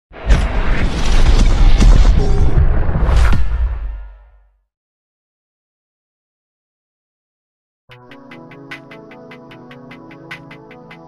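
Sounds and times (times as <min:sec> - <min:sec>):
deep rumbling boom: 0:00.2 - 0:04.3.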